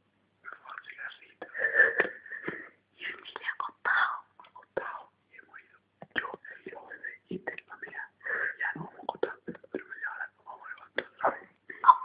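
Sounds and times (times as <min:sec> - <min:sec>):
person whispering: 0:00.4 - 0:02.2, 0:03.0 - 0:12.0.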